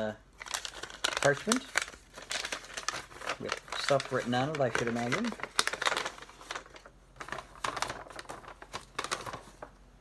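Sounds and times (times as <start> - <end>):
paper rustling and crackling: 0.3 - 9.9.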